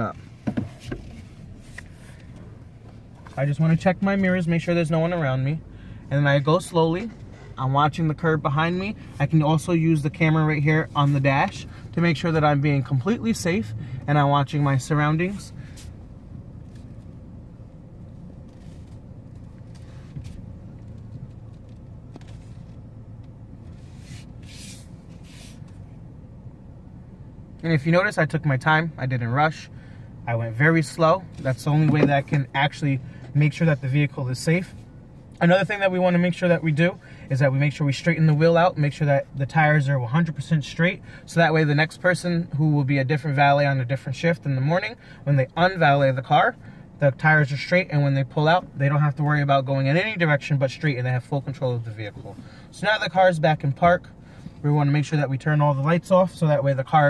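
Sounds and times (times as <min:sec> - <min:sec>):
soft rustles: 0:00.0 - 0:04.0, 0:18.0 - 0:26.0
low rumble inside car cabin: 0:00.0 - 0:57.0.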